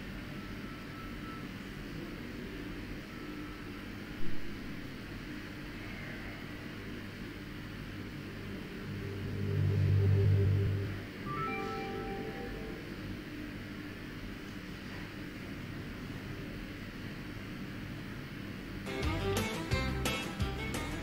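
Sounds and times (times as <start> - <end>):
steady low hum: 0.0 - 21.0
low sustained tone: 8.5 - 13.4.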